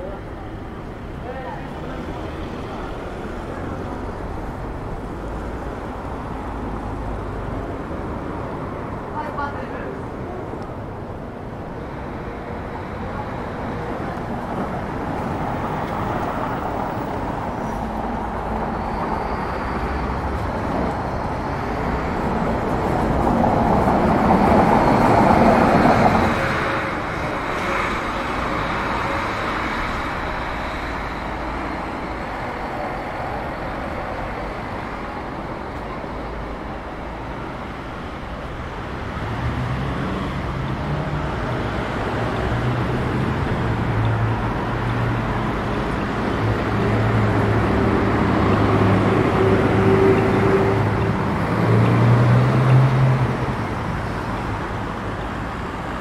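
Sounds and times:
passing cars: 0.0s - 56.0s.

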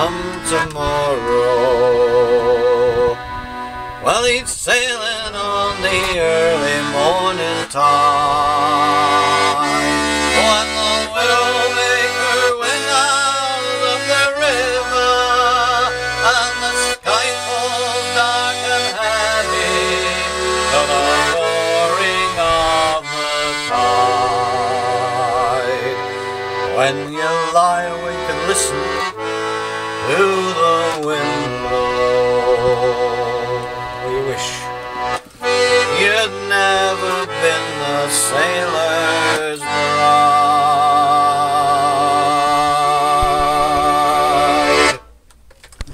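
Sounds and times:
man singing: 0.0s - 3.2s, 4.0s - 34.8s, 35.8s - 45.0s
button accordion playing: 0.0s - 45.2s.

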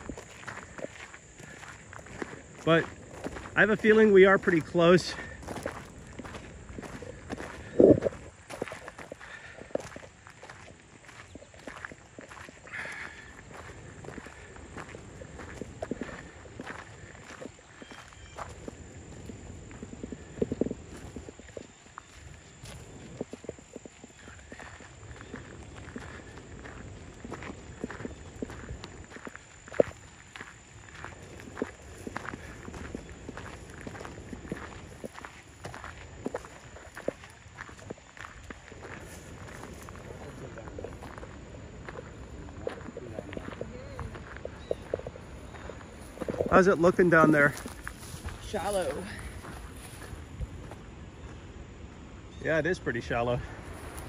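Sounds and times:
footsteps crunching on path: 0.0s - 52.4s, 53.0s - 54.0s.

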